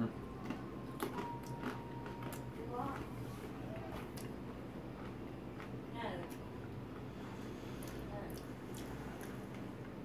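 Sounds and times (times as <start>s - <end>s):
chips being chewed: 0.3s - 10.0s.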